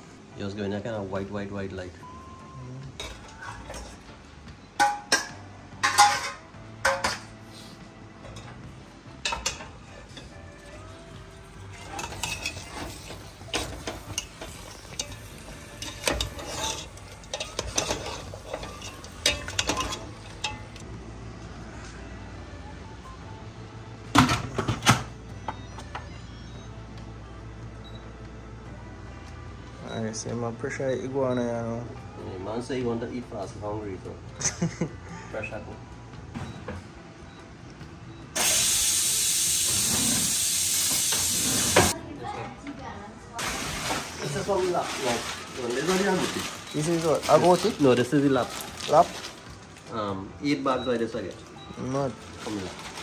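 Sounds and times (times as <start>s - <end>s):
metal spoon scraping a steel pot: 11.8s - 20.7s.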